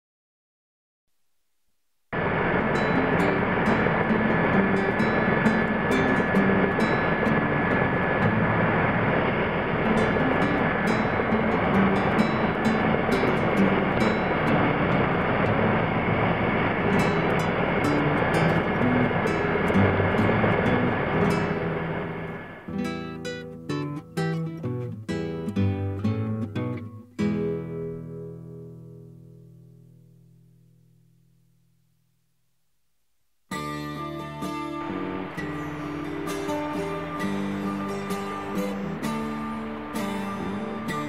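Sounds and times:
thin steady whine: 1.2s - 41.0s
aircraft cabin engine noise: 2.1s - 22.8s, 34.2s - 41.0s
faint music: 2.2s - 26.8s.

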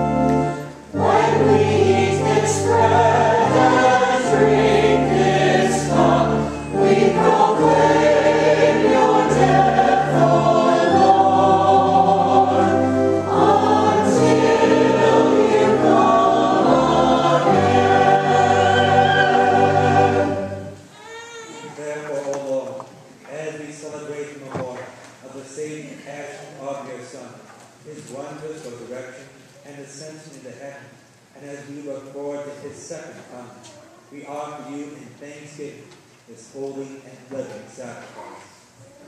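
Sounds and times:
church choir singing: 0.0s - 20.9s
low organ notes: 0.0s - 20.9s.

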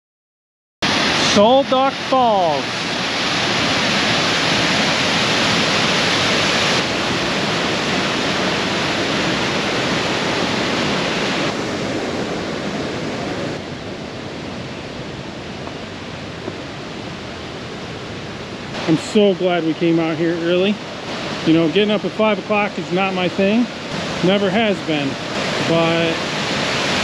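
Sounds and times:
waterfall rushing water: 0.8s - 27.0s.

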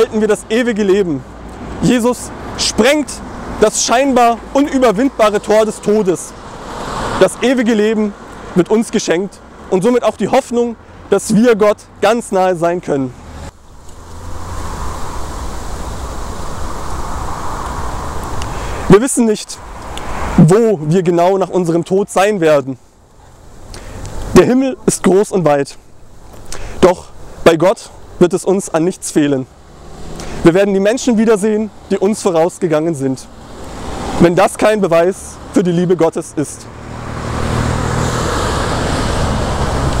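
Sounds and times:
road traffic rushing: 0.0s - 40.0s
rushing hiss: 13.5s - 20.4s.

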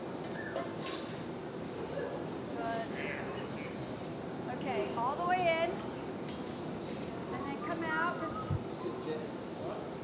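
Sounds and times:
gas furnace roaring: 0.0s - 10.0s.

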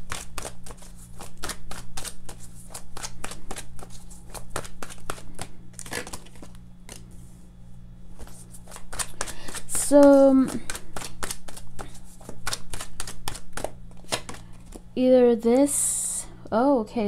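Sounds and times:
cards being shuffled: 0.0s - 7.4s, 8.1s - 14.9s
steady low hum: 0.0s - 17.0s.

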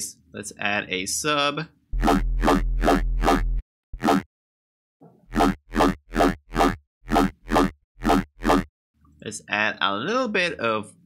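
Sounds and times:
synthesizer bass with talking tone: 2.0s - 3.6s.

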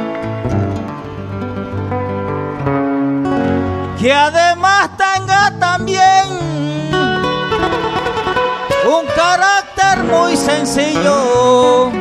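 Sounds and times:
guitars playing plucked melody: 0.0s - 12.0s
man singing: 4.0s - 12.0s.

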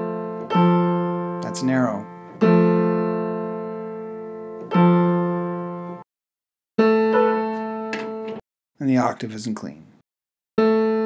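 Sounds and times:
piano notes struck and ringing: 0.0s - 6.0s, 6.8s - 8.4s, 10.6s - 11.0s.

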